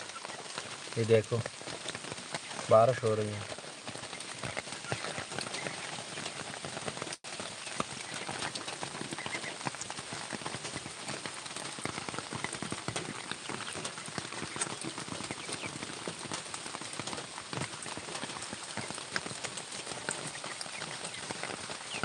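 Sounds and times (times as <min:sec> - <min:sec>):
rain pattering: 0:00.0 - 0:22.0.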